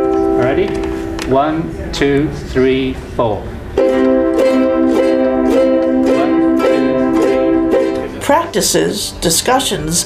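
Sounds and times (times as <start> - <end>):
ukulele strumming: 0.0 - 1.2, 3.8 - 9.0.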